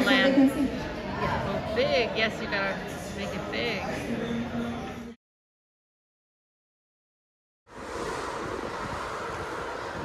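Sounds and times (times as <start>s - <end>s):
rush of choppy sea: 7.7s - 10.0s
wind buffeting microphone: 7.7s - 10.0s.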